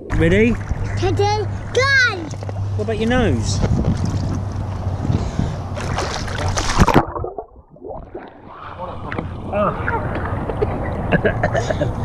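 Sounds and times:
pool water splashing: 0:00.0 - 0:11.3.

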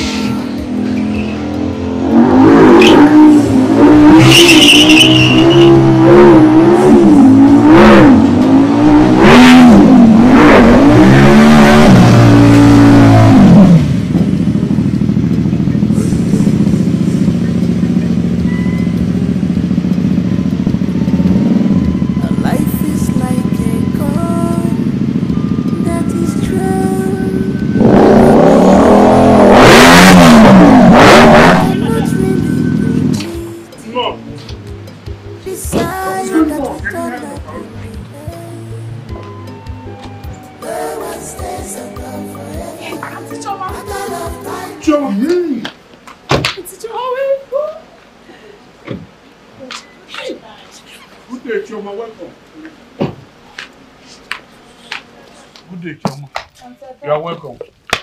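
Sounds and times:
motorcycle engine revving: 0:00.0 - 0:36.4
faint music: 0:14.9 - 0:28.7, 0:31.6 - 0:46.0.

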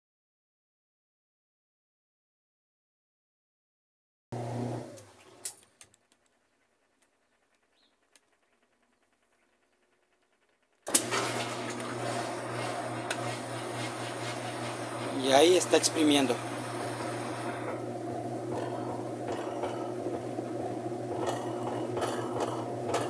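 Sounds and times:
washing machine spin-drain hum: 0:04.4 - 0:05.6, 0:08.8 - 0:23.0.

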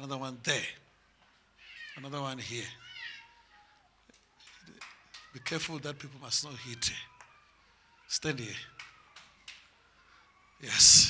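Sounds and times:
faint scattered hall sounds: 0:00.0 - 0:11.0
man speaking into a microphone: 0:02.0 - 0:02.8, 0:05.4 - 0:07.1, 0:08.1 - 0:08.7, 0:10.6 - 0:11.0.

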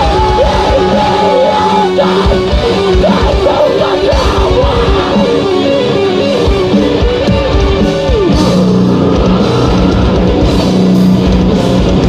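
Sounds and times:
harsh screamed vocals: 0:00.0 - 0:06.6, 0:08.1 - 0:10.7
heavy distorted guitars: 0:00.0 - 0:12.0.

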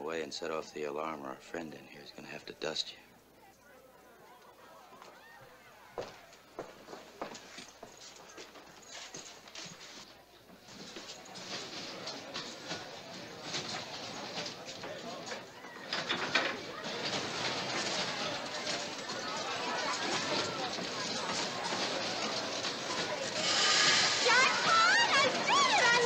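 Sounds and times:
crowd murmur: 0:03.1 - 0:26.0
clatter: 0:10.7 - 0:26.0.

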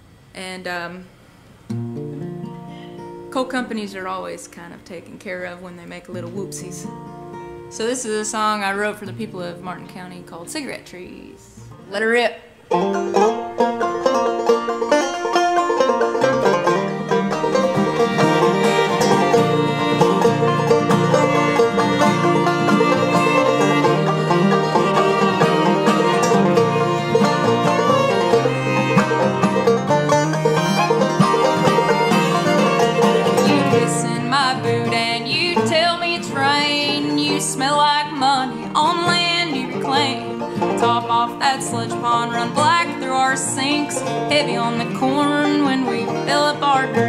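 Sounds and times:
acoustic guitar: 0:00.0 - 0:47.0
banjo: 0:11.6 - 0:47.0
fiddle: 0:12.7 - 0:47.0.

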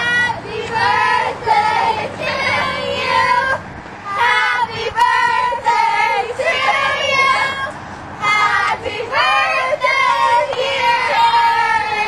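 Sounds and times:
girls singing loudly together: 0:00.0 - 0:12.0.

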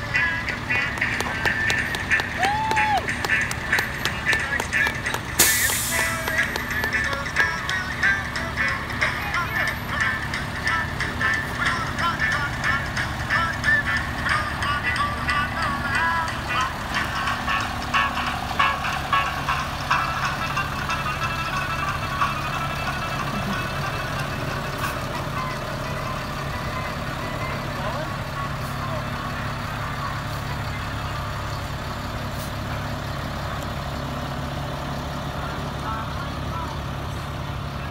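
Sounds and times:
loudspeaker voice or music: 0:00.0 - 0:17.4
bus engine humming: 0:00.0 - 0:37.9.

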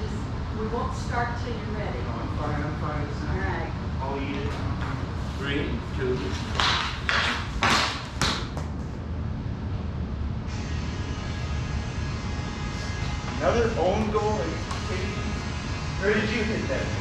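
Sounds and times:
steady low rumble: 0:00.0 - 0:17.0.

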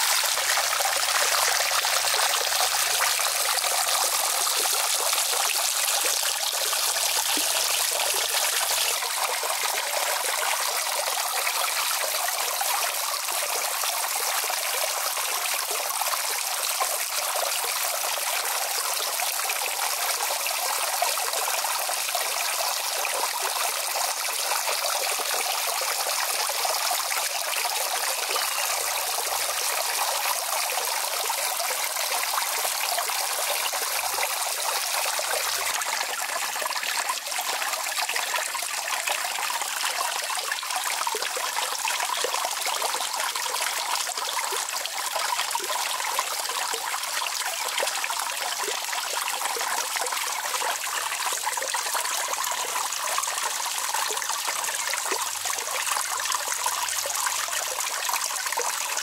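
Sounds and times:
water trickling: 0:00.0 - 0:59.0.

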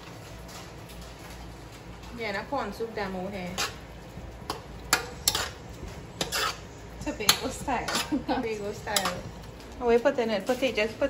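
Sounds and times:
spoon scraping a metal pot: 0:04.5 - 0:09.4.

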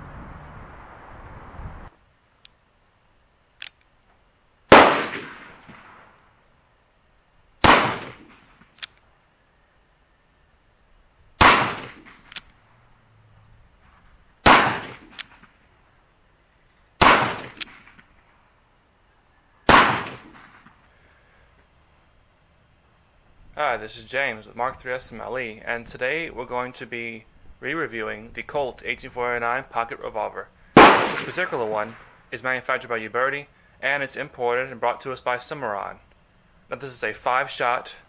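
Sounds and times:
revolver gunshots: 0:04.7 - 0:06.2, 0:07.6 - 0:08.8, 0:11.4 - 0:12.4, 0:14.4 - 0:15.6, 0:17.0 - 0:18.2, 0:19.7 - 0:20.8, 0:30.8 - 0:32.2
revolver hammer cocking click: 0:11.8 - 0:12.6, 0:17.4 - 0:17.8.

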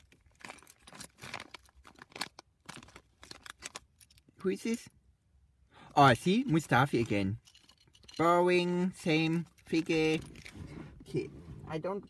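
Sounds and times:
plastic foil bag tearing and crinkling: 0:00.0 - 0:03.8.

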